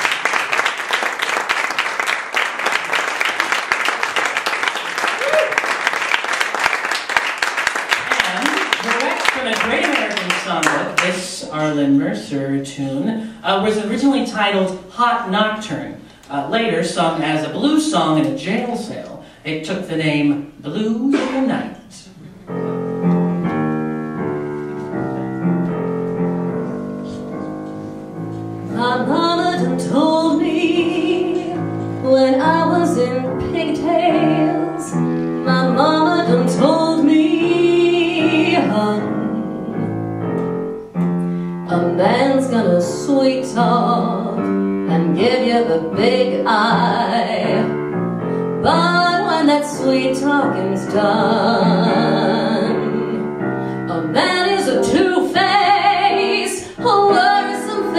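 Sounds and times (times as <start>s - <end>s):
solo piano: 22.3s - 57.9s
woman singing with vibrato: 28.7s - 39.9s, 41.6s - 47.8s, 48.6s - 53.3s, 53.9s - 57.9s.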